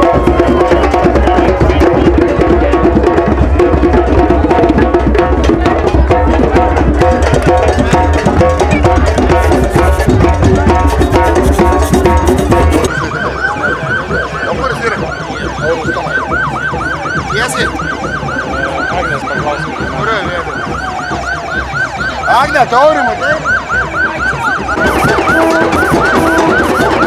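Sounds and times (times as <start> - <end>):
music: 0.0 - 27.0
police siren yelping: 7.9 - 27.0.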